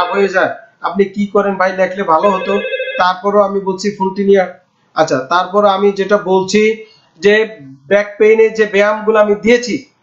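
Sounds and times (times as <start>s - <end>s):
steady high tone: 0.0s - 0.7s, 2.0s - 3.2s
man talking: 0.0s - 10.0s.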